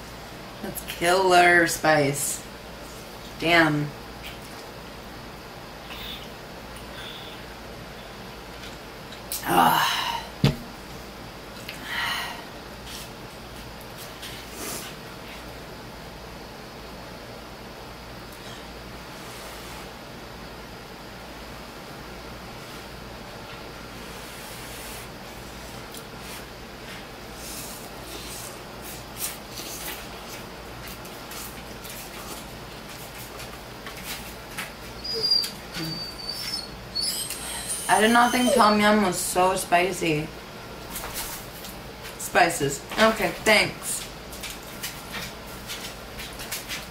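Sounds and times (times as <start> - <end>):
low steady hum: 0.0 - 46.9
dog whining: 34.9 - 39.0.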